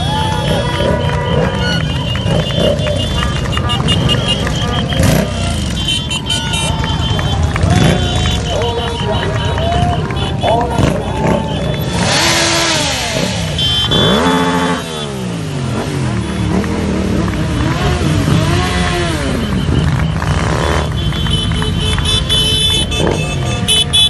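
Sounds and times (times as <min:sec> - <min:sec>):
motorcycle engines revving past: 0:00.0 - 0:24.0.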